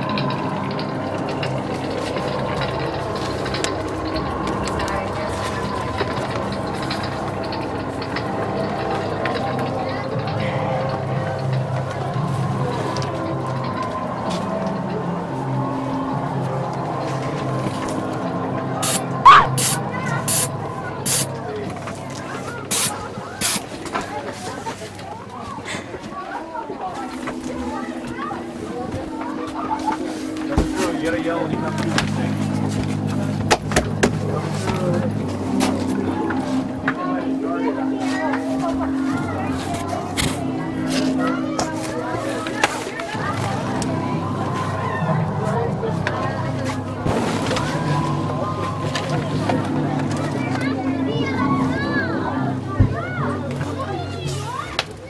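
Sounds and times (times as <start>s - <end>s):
indistinct voices: 0.0s - 55.0s
sharp air hisses: 18.8s - 20.5s.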